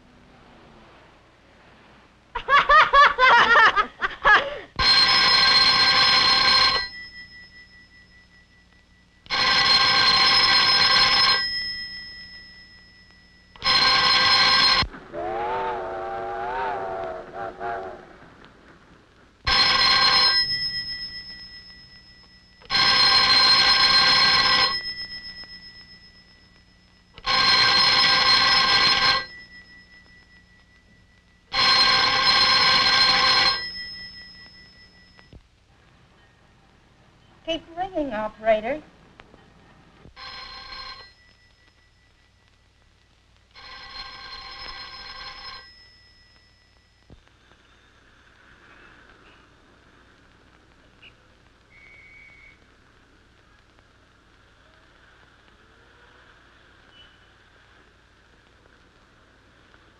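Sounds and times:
telephone bell ringing: 4.8s - 14.9s, 19.5s - 35.4s, 40.2s - 42.2s, 43.6s - 46.9s.

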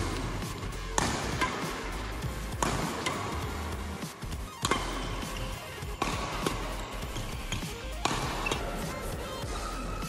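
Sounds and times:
badminton racket hitting shuttlecock: 0.0s - 9.1s
background music: 0.0s - 10.0s.

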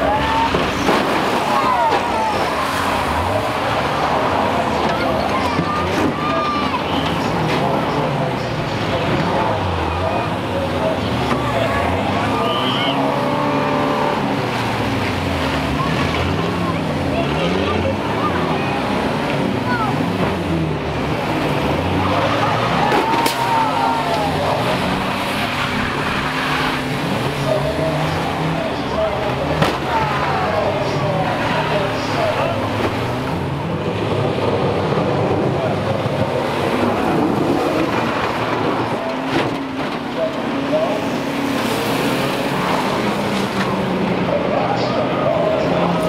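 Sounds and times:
racing engines revving: 0.0s - 46.0s.

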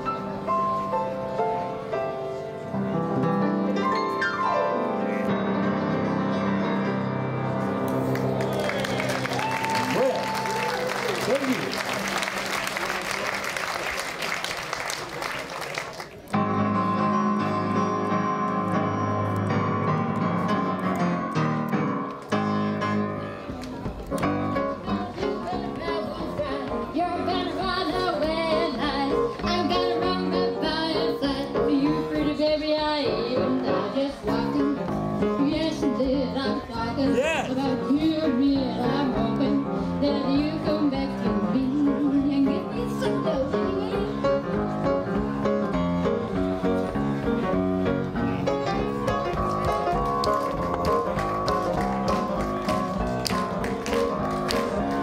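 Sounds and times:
rhythm and blues piano: 0.0s - 55.0s
woman singing into a microphone: 24.8s - 44.3s
band playing: 37.0s - 38.0s, 44.2s - 55.0s.

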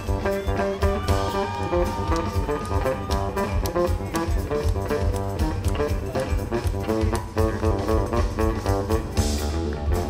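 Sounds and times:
electric bass guitar solo: 0.0s - 10.0s.

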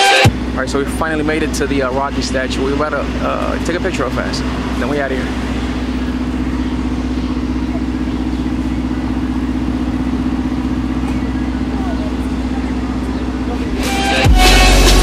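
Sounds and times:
steady mechanical hum: 0.2s - 14.0s
faint voices: 0.6s - 14.1s.

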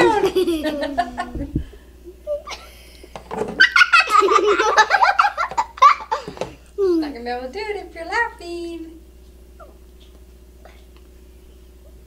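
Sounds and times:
girls laughing loudly: 0.0s - 1.6s, 3.5s - 6.3s.

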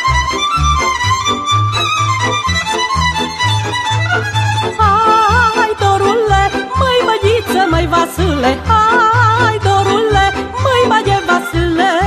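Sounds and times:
folk band violin melody: 0.0s - 12.0s.

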